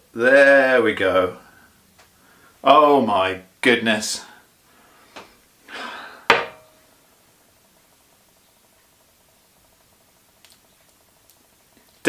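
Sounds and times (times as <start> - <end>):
hissing rush of breath: 4.8 - 6.3.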